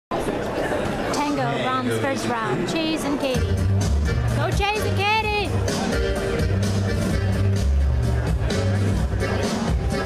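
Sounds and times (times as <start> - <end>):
crowd chatter in a large hall: 0.1 - 10.0.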